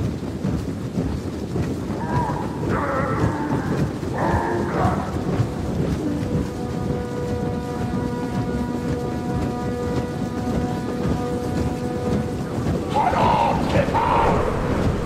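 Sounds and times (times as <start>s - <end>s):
heavy marching footfalls: 0.0s - 15.0s
held horn note: 5.0s - 15.0s.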